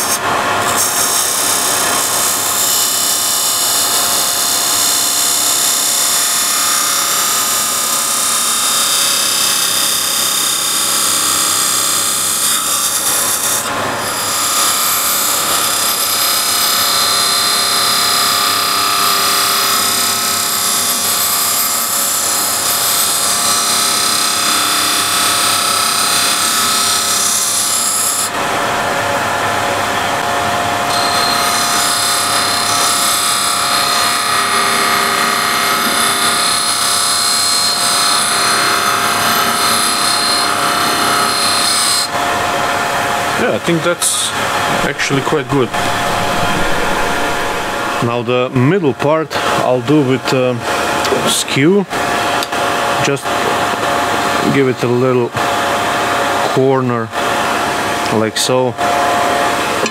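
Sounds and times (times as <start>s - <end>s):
turning tool cutting wood: 0.0s - 48.2s
wood lathe whine: 0.0s - 59.9s.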